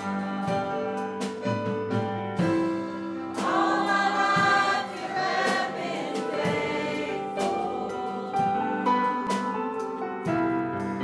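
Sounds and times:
choir singing gospel: 0.0s - 1.6s, 2.4s - 11.0s
keyboard and guitars accompanying: 0.0s - 11.0s.

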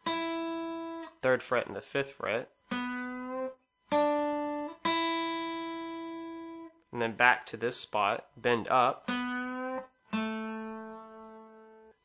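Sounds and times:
plucked acoustic guitar notes: 0.0s - 12.0s.

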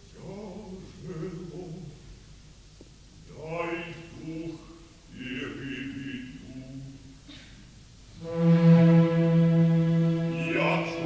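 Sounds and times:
bass voice singing opera: 0.1s - 2.0s, 3.3s - 7.1s, 10.2s - 11.0s
orchestra held brass note: 8.2s - 11.0s.

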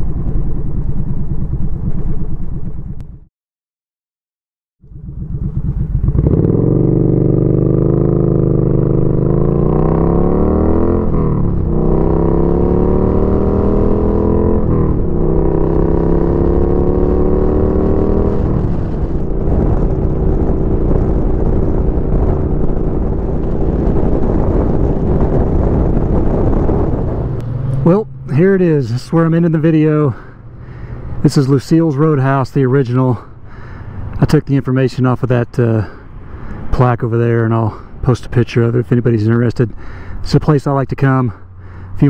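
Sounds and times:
motorcycle engine accelerating: 0.0s - 3.3s, 4.8s - 34.5s.

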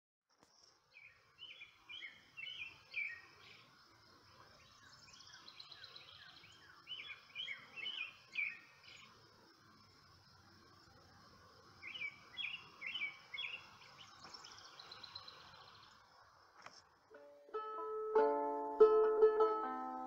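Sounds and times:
outdoor background hiss: 0.3s - 20.0s
songbird chirping: 0.3s - 20.0s.

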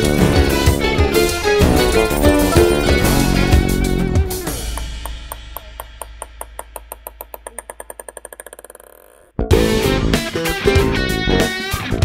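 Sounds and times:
band playing: 0.0s - 5.1s
ping-pong ball bouncing on wood: 4.6s - 9.2s.

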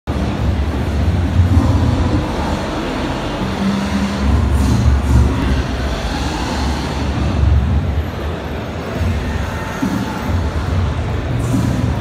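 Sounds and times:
loud low rumble: 0.1s - 9.5s
deep bass notes: 0.1s - 12.0s.

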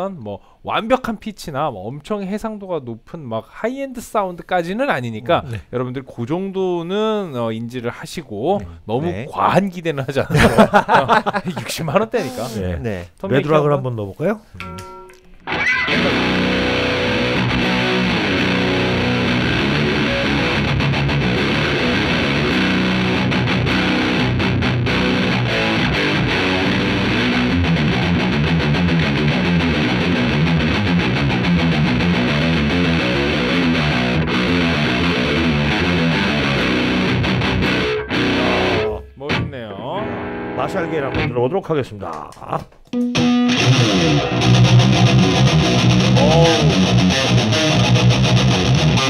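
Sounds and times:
electric guitar riffs: 14.6s - 41.3s, 42.9s - 49.0s.

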